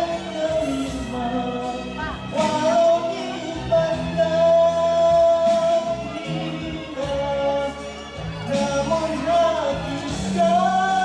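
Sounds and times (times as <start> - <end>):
band accompaniment: 0.0 - 11.0.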